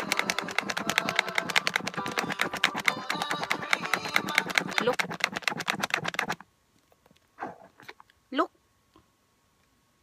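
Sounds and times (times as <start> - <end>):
wet foaming net squishing: 0.0 - 6.4.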